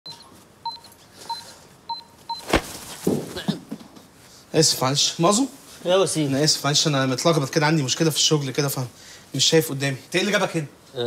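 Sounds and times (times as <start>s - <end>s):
short electronic beeps: 0.1s - 2.5s.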